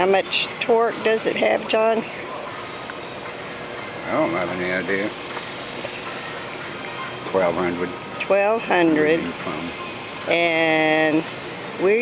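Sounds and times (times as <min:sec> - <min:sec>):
electric motor and chain drive running: 0:00.0 - 0:12.0.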